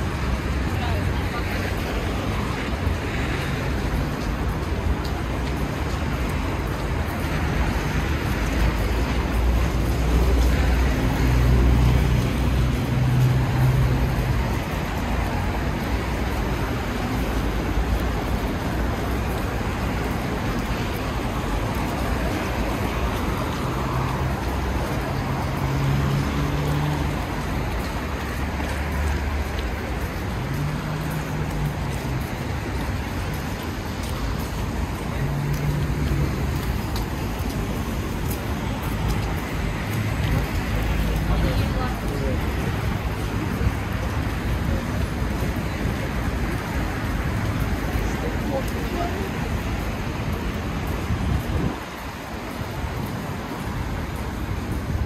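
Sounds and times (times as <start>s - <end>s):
road noise from passing vehicles: 0.0s - 55.0s.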